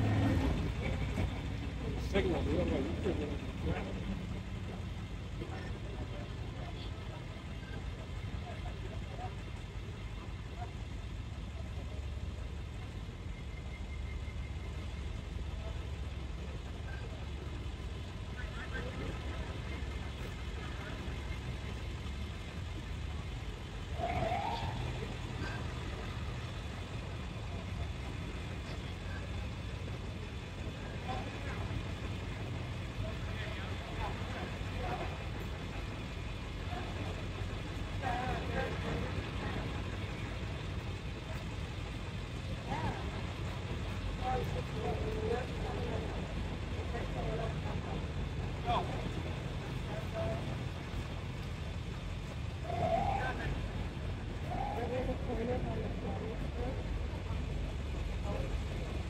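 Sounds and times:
faint voices of onlookers: 0.0s - 59.0s
vehicle engines rumbling: 0.0s - 59.0s.

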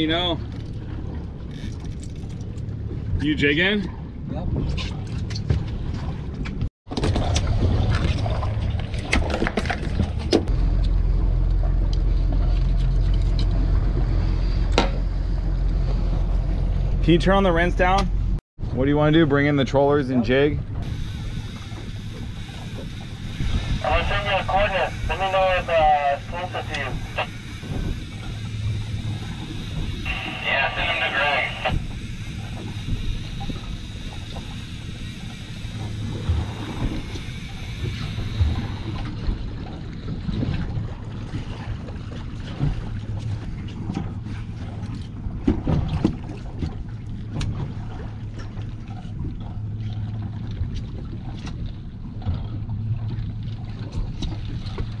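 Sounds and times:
boat engine running: 0.0s - 55.0s
water against hull: 0.0s - 55.0s
wind on microphone: 20.6s - 24.0s.

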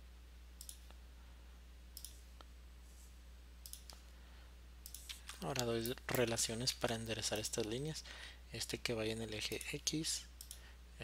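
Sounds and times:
low electrical hum: 0.0s - 11.0s
computer mouse clicks: 0.6s - 1.0s, 2.0s - 2.2s, 3.6s - 4.0s, 4.8s - 6.4s, 10.4s - 10.6s.

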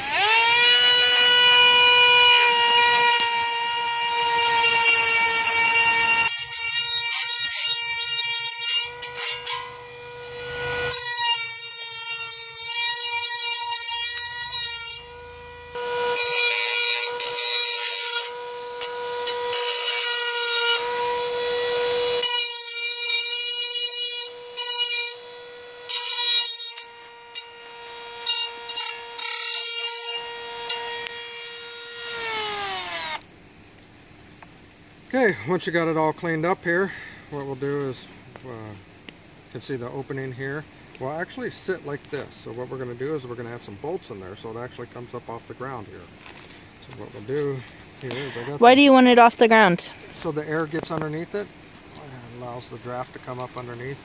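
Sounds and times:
grinding wheel grating on metal: 0.0s - 27.6s
rotary tool whining: 0.0s - 33.2s.

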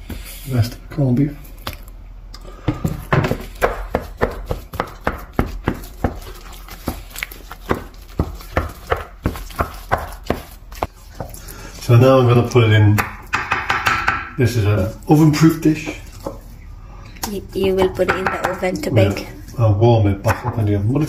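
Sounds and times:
wooden spatula knocking saucepan: 12.9s - 14.4s.

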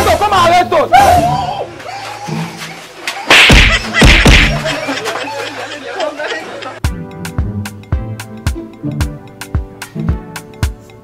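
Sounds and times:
background music with steady beat: 3.3s - 5.2s, 6.7s - 11.0s.

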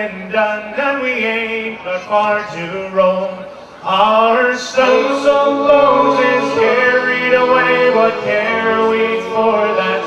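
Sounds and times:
male vocal group singing: 0.0s - 10.0s.

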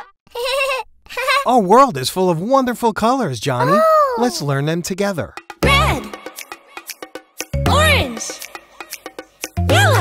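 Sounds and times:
animated character voice speaking: 3.4s - 4.8s.

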